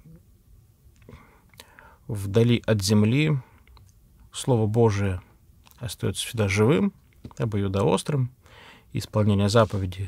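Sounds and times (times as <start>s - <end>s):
man breathing faintly: 1.0s - 2.1s, 8.4s - 9.0s
man speaking: 2.1s - 3.5s, 4.3s - 8.3s, 8.9s - 10.0s.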